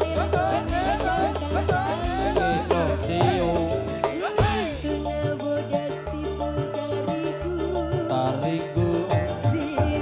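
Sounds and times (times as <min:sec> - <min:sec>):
bass line: 0:00.0 - 0:10.0
steady drum beat: 0:00.0 - 0:10.0.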